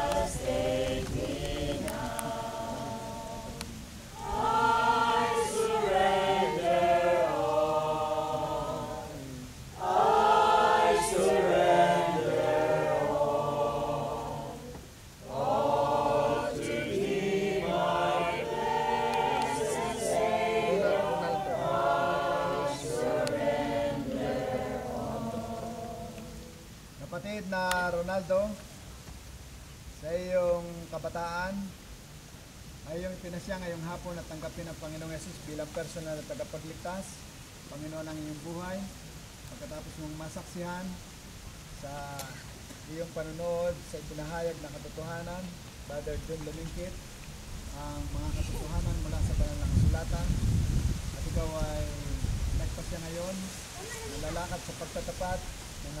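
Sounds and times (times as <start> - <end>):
group singing a hymn: 0.0 - 27.2, 41.8 - 56.0.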